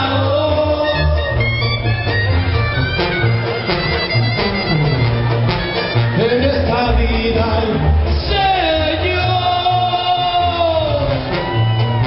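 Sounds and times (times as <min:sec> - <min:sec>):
brass band playing: 0:00.0 - 0:12.0.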